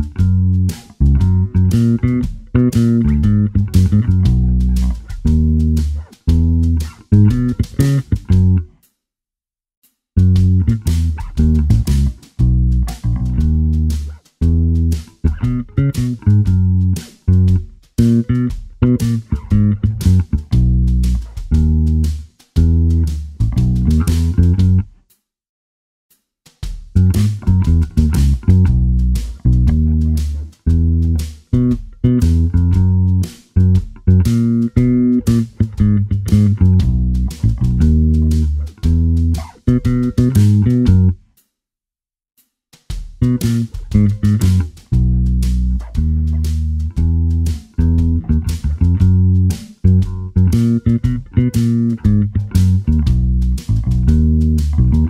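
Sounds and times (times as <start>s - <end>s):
electric bass plucked notes: 0.0s - 8.8s, 10.2s - 24.9s, 27.0s - 41.2s, 43.2s - 55.0s.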